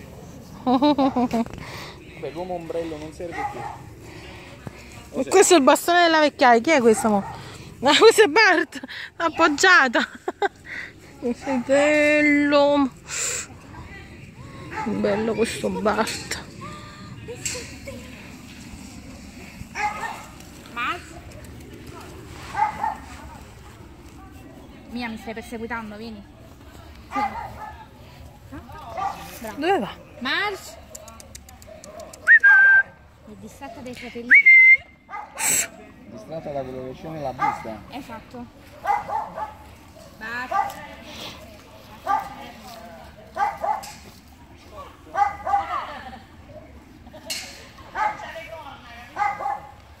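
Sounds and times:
dog barking: 3.3 - 3.9, 19.8 - 20.3, 22.5 - 23.1, 27.1 - 27.8, 29.0 - 29.3, 35.1 - 35.4, 37.4 - 37.8, 38.7 - 40.9, 42.0 - 42.4, 43.4 - 44.0, 45.1 - 45.9, 47.9 - 48.3, 49.2 - 49.8.

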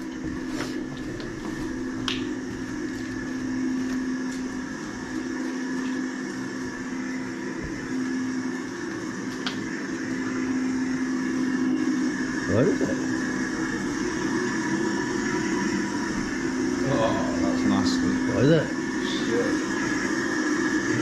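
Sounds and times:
electrical hum of equipment: 0.0 - 21.0.

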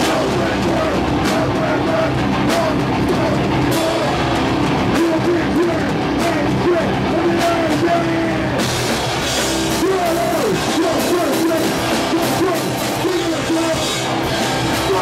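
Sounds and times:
distorted electric guitars: 0.0 - 15.0
rock band playing: 0.0 - 15.0.

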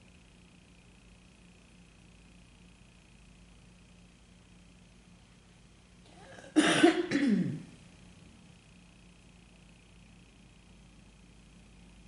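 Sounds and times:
woman coughing: 6.1 - 7.7.

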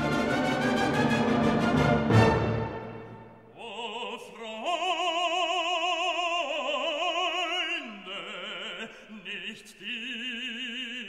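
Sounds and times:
operatic singing: 0.0 - 11.0.

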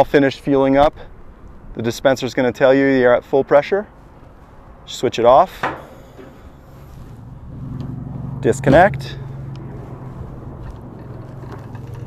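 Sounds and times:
low motor hum: 5.6 - 12.0.

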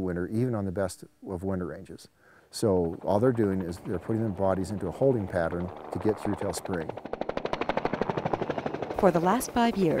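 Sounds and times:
helicopter rotor blades beating: 2.5 - 10.0.

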